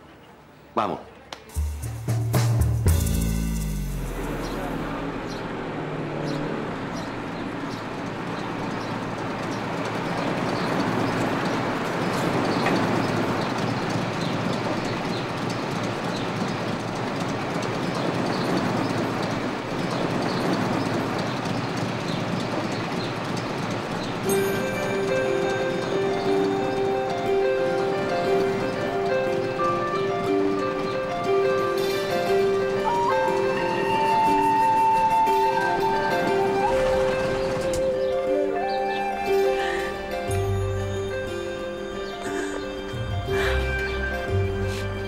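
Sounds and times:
music with long held notes: 1.5 - 6.3, 24.2 - 45.0
tyres rumbling on cobblestones: 1.6 - 45.0.

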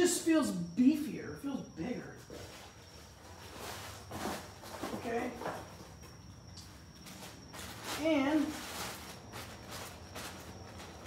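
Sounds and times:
packaging rustling and scraping: 7.2 - 11.0.

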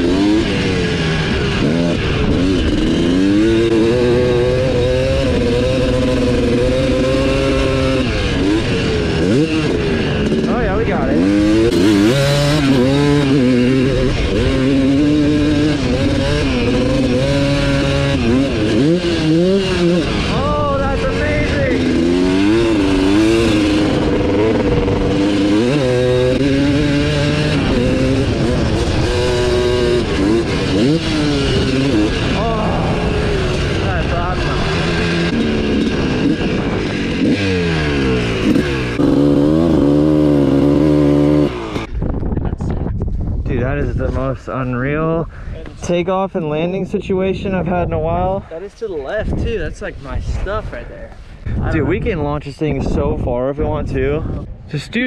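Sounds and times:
dirt bike engine revving: 0.0 - 42.4.

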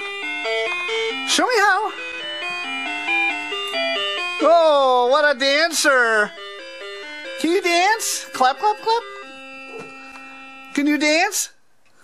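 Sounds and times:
bell-like electronic tune: 0.0 - 11.2.

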